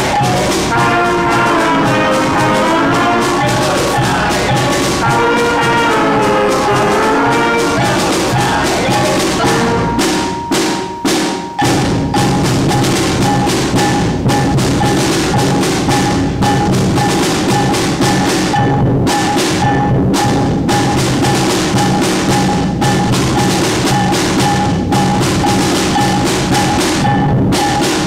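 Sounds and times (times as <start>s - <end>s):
wind instruments melody: 0.0s - 18.6s
drums keeping a beat: 0.0s - 28.0s.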